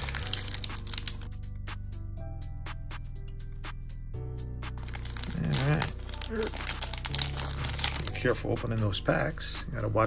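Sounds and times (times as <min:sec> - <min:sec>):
foil wrapper crinkling: 0:00.0 - 0:01.3, 0:04.8 - 0:08.9
background music with low notes: 0:00.0 - 0:10.0.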